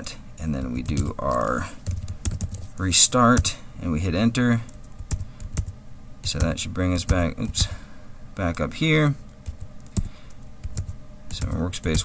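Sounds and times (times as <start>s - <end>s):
keyboard keys clicking: 9.4s - 12.0s.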